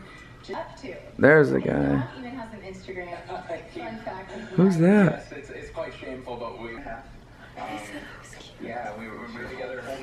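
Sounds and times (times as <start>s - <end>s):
television speech: 0.0s - 10.0s.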